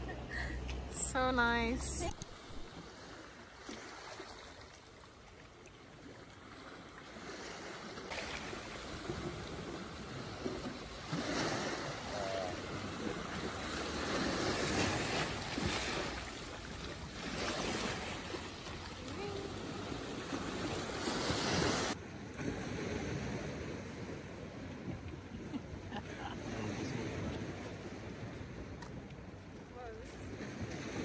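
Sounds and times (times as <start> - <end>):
waves washing over rocks: 1.0 - 5.3, 5.9 - 24.3.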